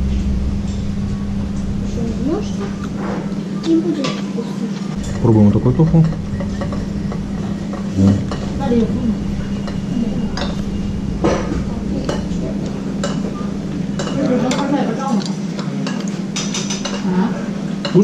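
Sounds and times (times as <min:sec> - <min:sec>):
steady low hum: 0:00.0 - 0:18.0
chopsticks and spoons clinking bowls: 0:05.0 - 0:08.6, 0:09.4 - 0:18.0.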